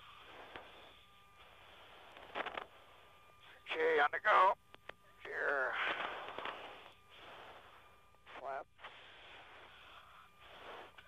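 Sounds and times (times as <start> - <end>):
radio channel hiss: 0.0 - 11.0.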